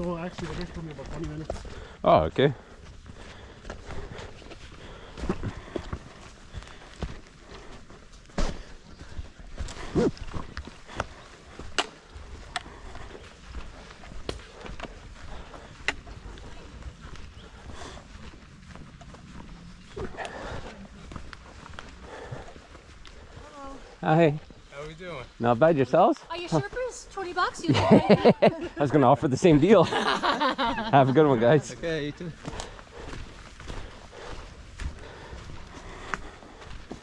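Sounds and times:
footsteps on rocky dirt trail: 0.0s - 37.0s.

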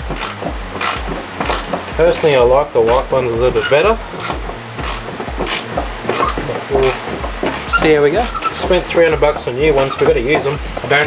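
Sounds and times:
hand tool clicking: 0.0s - 11.0s
music with bass beat: 0.0s - 11.0s
man speaking: 2.0s - 4.1s, 6.6s - 7.0s, 7.7s - 11.0s.

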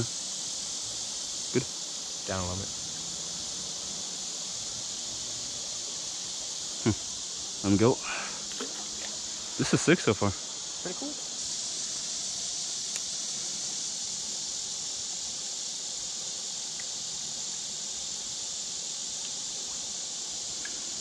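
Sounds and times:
high-pitched insect chorus: 0.0s - 21.0s.

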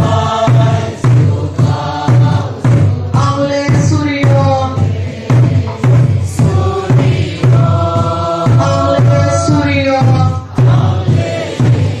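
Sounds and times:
barrel drum beating: 0.0s - 12.0s
congregation singing: 0.0s - 12.0s.

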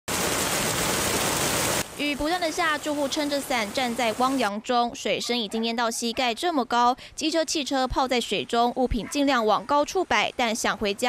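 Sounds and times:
heavy rain on water: 0.1s - 4.5s.

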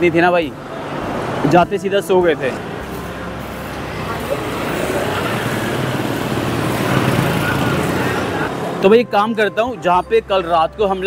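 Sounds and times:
motorbikes and scooters running: 0.0s - 9.5s.

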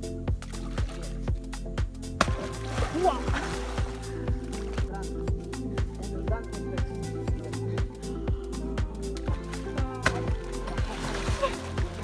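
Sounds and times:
background music with steady beat: 0.0s - 12.0s
fish splashing in water: 2.2s - 4.8s.

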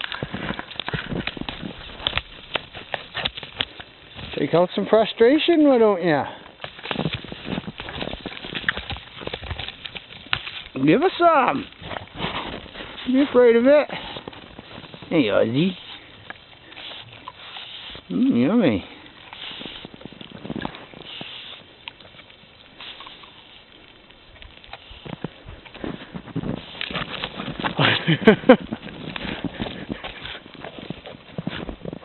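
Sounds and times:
twigs snapping: 0.0s - 4.4s, 6.4s - 18.2s
goat nibbling twigs: 0.0s - 32.0s
leaves rustling: 0.0s - 32.0s.

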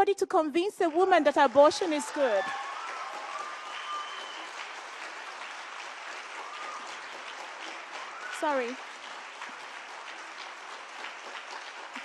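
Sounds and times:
audience applauding: 0.8s - 12.0s.

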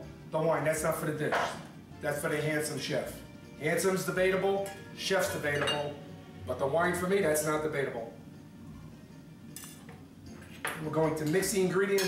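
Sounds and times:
man talking: 0.4s - 8.1s, 10.8s - 12.0s
wine glass clinking on countertop: 5.6s - 6.0s.

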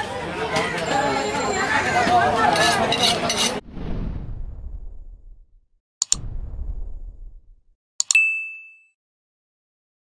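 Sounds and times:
low rumble: 3.6s - 7.8s
high notification bell ding: 8.0s - 9.0s.

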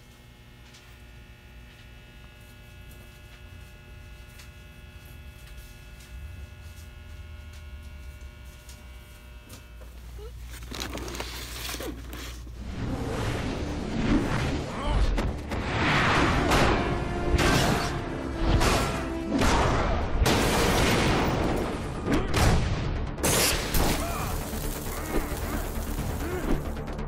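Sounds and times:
electrical hum: 0.0s - 19.3s, 24.0s - 26.8s
rushing and crackling noise: 23.9s - 27.0s.

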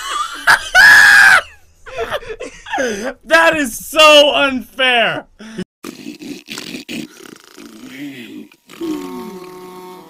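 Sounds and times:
vocal sounds sliding down: 6.0s - 10.0s.

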